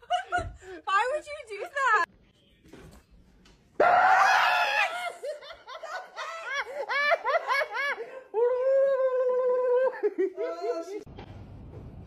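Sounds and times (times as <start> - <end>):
long drawn-out cry: 3.8 - 5.2.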